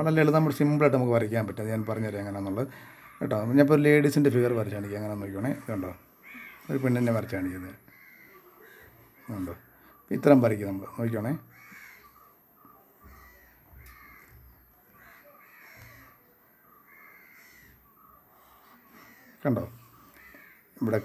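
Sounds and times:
crows cawing: 1.8s - 21.0s.

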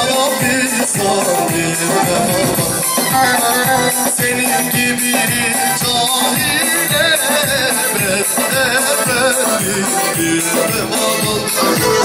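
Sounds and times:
electronic keyboard playing: 0.0s - 12.0s
low drum beat: 0.0s - 12.0s
saz playing: 0.5s - 4.1s, 8.0s - 12.0s.

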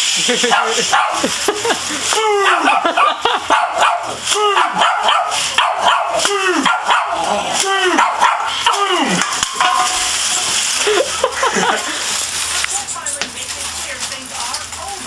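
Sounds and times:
aluminium foil crinkling: 0.1s - 15.0s
small dog barking: 0.5s - 1.3s, 2.7s - 7.2s, 8.0s - 8.8s.

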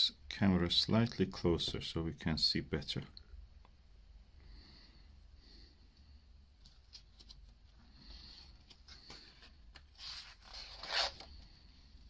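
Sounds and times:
book page turning: 6.6s - 7.8s.

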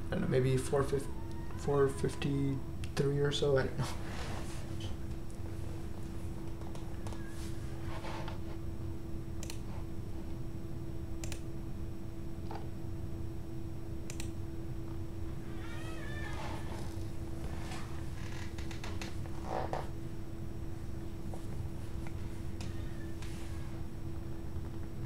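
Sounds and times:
steady low hum: 0.0s - 25.0s
sharp clicks: 9.4s - 9.6s, 11.2s - 11.5s, 14.1s - 14.4s.

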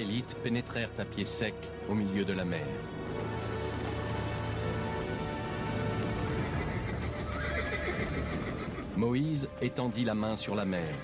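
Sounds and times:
horses whinnying: 6.0s - 9.0s.

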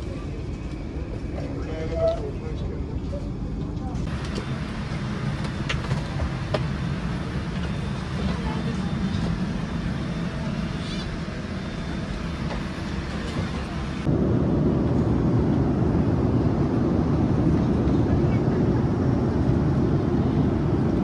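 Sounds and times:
airliner cabin engine rumble: 0.0s - 21.0s.

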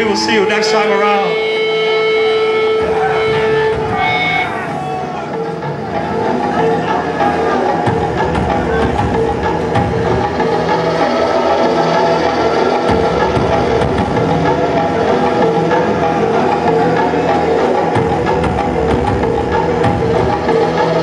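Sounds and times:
drums: 1.4s - 21.0s.

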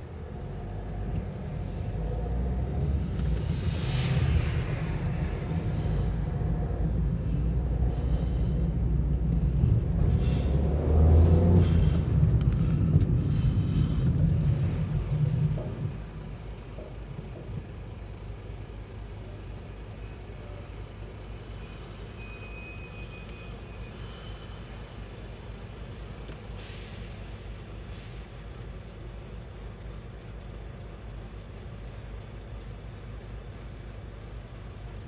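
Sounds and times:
car driving rumble: 0.0s - 22.1s
engine hum: 0.0s - 35.0s.

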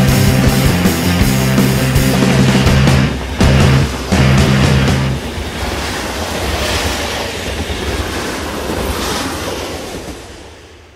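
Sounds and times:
heavy rock music: 0.0s - 5.4s
steady noisy rumble: 0.0s - 7.4s.

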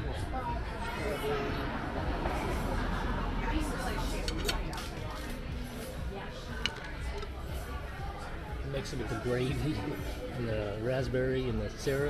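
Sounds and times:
background music: 1.5s - 12.0s.

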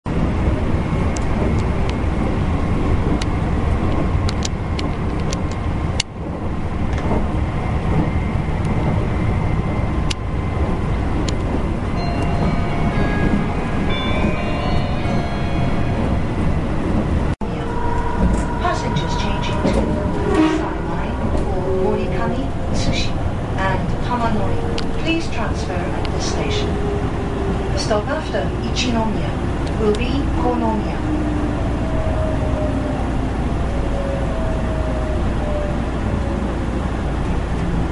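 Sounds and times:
train wheels rumbling: 0.1s - 37.9s.

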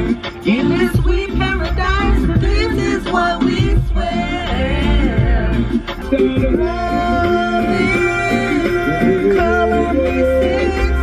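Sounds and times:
song on car radio: 0.0s - 11.0s.

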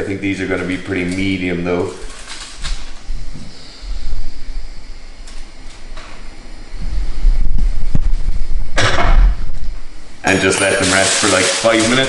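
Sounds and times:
aluminium foil crinkling: 0.5s - 3.1s, 10.3s - 12.0s
microphone handling rumble: 6.7s - 10.0s.

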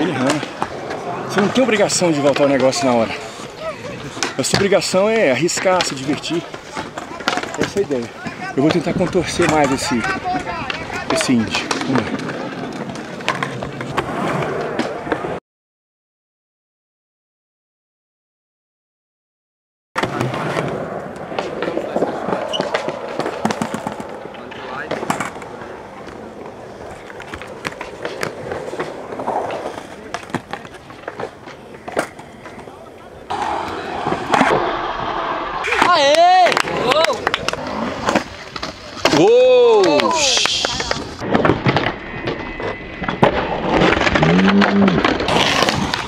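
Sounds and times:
voices: 0.0s - 13.2s, 21.4s - 34.6s, 35.6s - 41.2s
skateboard wheels rolling on concrete: 0.0s - 15.4s, 20.0s - 46.0s
skateboards clacking on ground: 0.0s - 15.4s, 20.0s - 46.0s.

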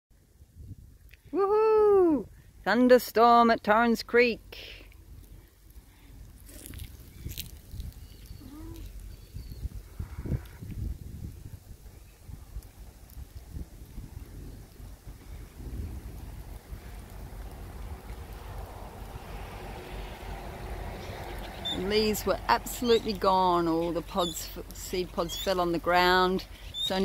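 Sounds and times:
wind rushing through tree leaves: 0.2s - 27.0s
storm wind buffeting microphone: 8.8s - 27.0s.

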